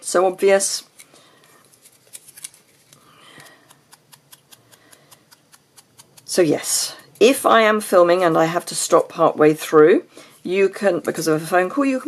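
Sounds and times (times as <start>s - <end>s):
soft rubbing: 0.9s - 8.7s
sponge dabbing clicks and taps: 3.6s - 6.4s.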